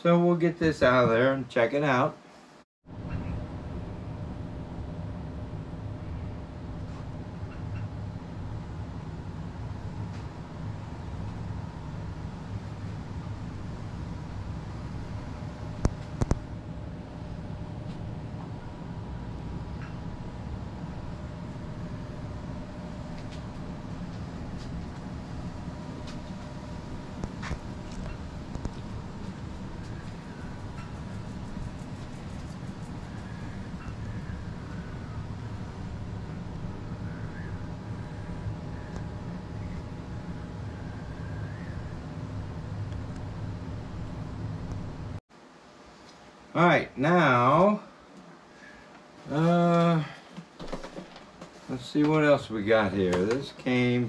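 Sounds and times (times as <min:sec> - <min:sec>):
low mechanical hum with tones: 0:00.0 - 0:54.0.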